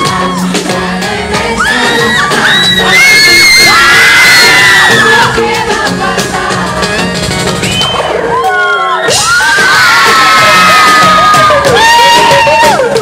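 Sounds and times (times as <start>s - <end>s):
person singing: 0.0s - 7.2s
amplified pop music: 0.0s - 13.0s
crowd screaming and cheering: 0.0s - 13.0s.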